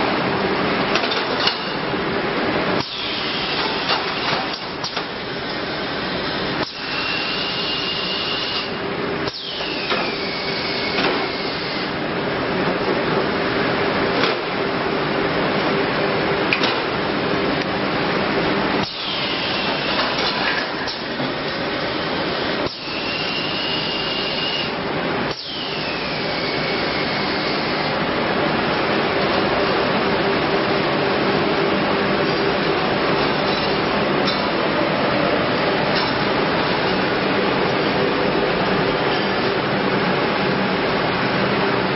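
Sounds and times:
machine blowing hiss and hum: 0.0 - 41.9.

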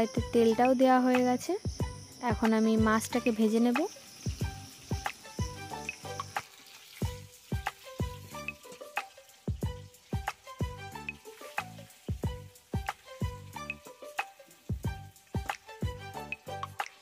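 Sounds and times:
background music with steady beat: 0.0 - 17.0
fish sizzling in oil: 0.0 - 17.0.

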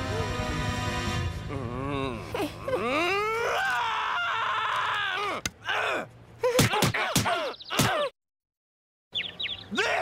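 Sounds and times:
man crying out: 1.5 - 8.1.

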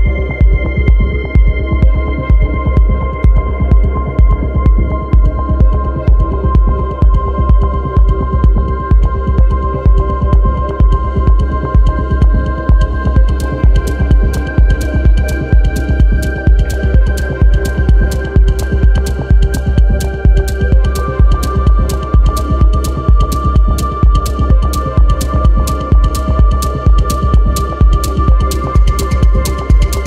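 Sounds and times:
deep kick drum beat: 0.0 - 30.0
techno music: 0.0 - 30.0
high hi-hat ticks: 13.2 - 30.0.

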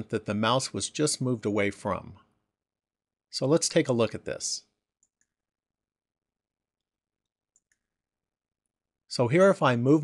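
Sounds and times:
faint computer mouse click: 5.0 - 5.4, 6.8 - 7.9.

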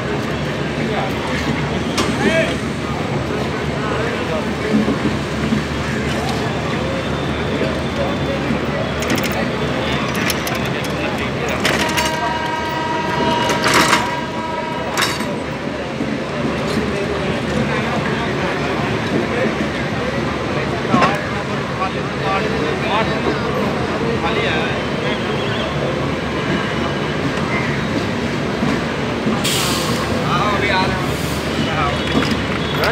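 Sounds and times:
train coaches rumbling on rails: 0.0 - 32.9
train horn: 11.6 - 15.5.

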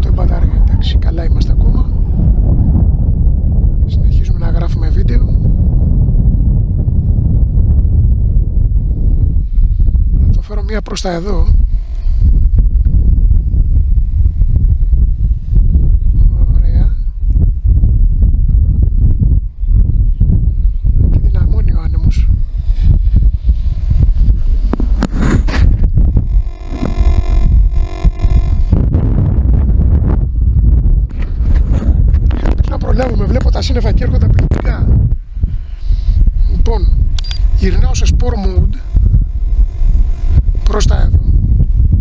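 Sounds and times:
gusty wind buffeting microphone: 0.0 - 42.0.

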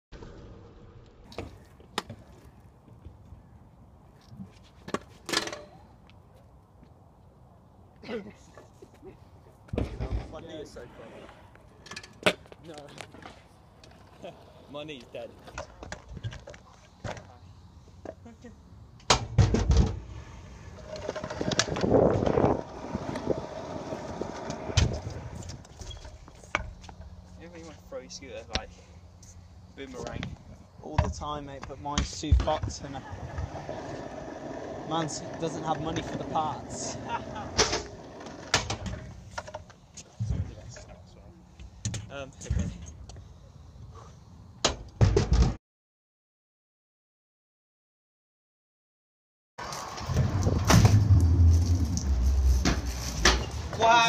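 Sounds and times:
scooter rolling on concrete: 19.7 - 27.5, 32.7 - 40.1, 49.6 - 54.0.

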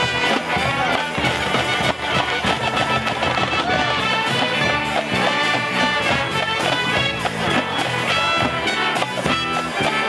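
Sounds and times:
brass and woodwinds holding chords: 0.0 - 10.0
mallet keyboards: 0.0 - 10.0
percussion beat: 0.0 - 10.0.

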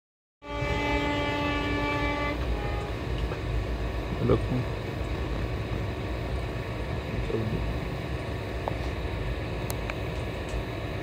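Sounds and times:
locomotive horn blast: 0.4 - 3.0
moving train rumble: 0.4 - 11.0.

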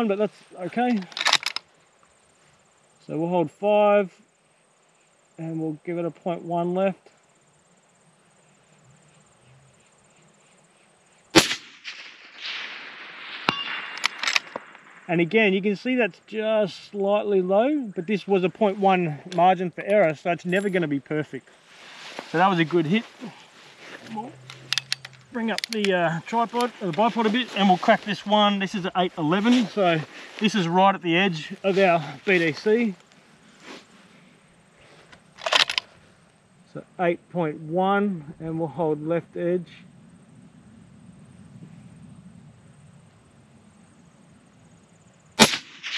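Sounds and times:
rifle and bipod clicking: 1.1 - 1.6, 35.4 - 35.9
rifle shot: 11.3 - 15.2, 45.4 - 45.9.

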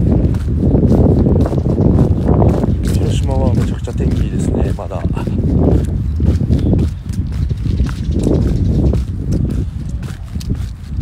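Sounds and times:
footsteps walking: 0.0 - 11.0
heavy low rumble: 0.0 - 11.0.

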